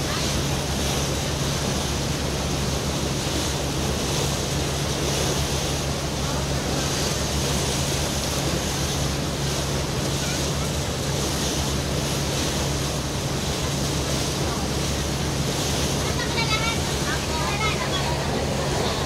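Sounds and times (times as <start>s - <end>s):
boat engine hum: 0.0s - 19.0s
water rushing along hull: 0.0s - 19.0s.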